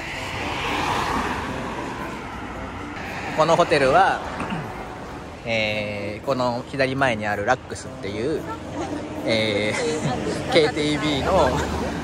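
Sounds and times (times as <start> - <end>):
car passing by: 0.0 - 5.9, 8.6 - 12.0.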